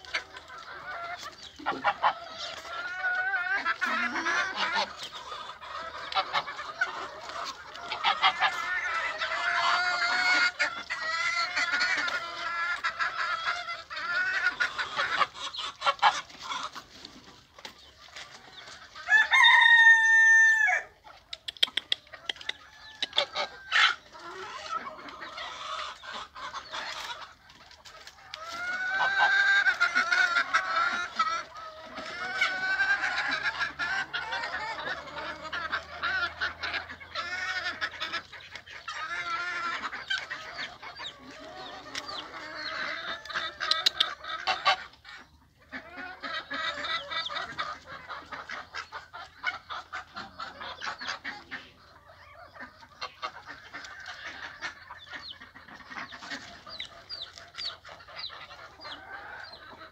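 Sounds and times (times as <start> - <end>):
chickens clucking: 0.0 - 59.9
rooster crowing: 19.1 - 20.8.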